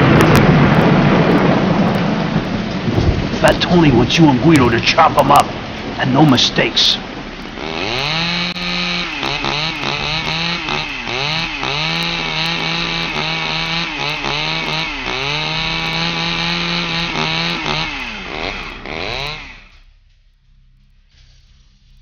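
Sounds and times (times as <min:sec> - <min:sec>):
chainsaw engine revving: 0:07.2 - 0:19.9.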